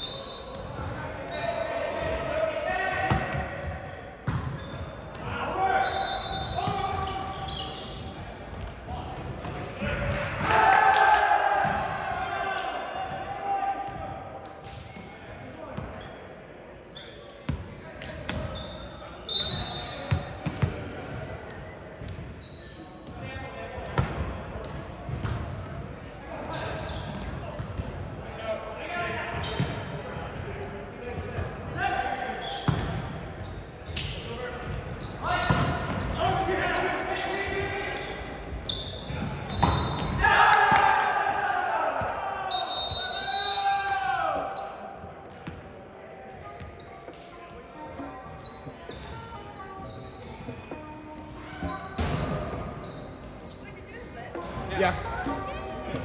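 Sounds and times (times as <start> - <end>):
players shouting: 39.8 - 44.6.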